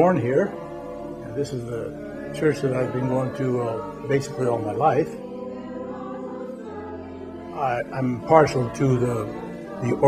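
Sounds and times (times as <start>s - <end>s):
choir singing held chord: 0.0s - 10.0s.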